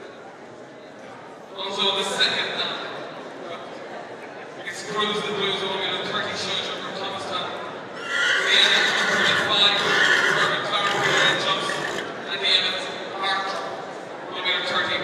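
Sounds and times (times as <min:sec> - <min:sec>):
horse whinnying loudly: 0:08.0 - 0:12.1.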